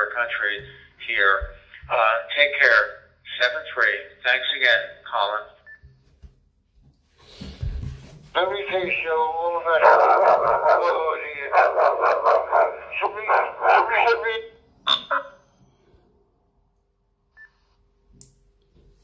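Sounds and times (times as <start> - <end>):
man's voice through radio speaker: 0.0 - 5.6, 8.4 - 15.3.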